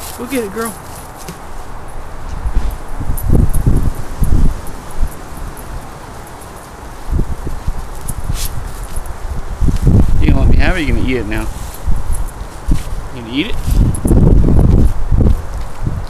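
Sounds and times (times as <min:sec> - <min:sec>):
rustling in grass: 0:00.0 - 0:16.0
low thudding rumbles: 0:01.8 - 0:05.2.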